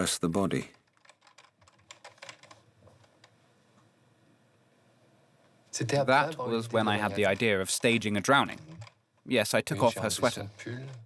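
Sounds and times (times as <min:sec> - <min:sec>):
typing on computer keyboard: 0:00.7 - 0:03.3, 0:07.2 - 0:09.0.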